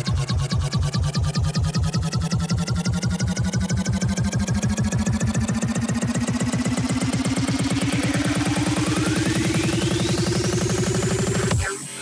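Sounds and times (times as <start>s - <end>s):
pulsing bass stutter: 0.0s - 11.9s
rising synth sweep: 0.0s - 12.0s.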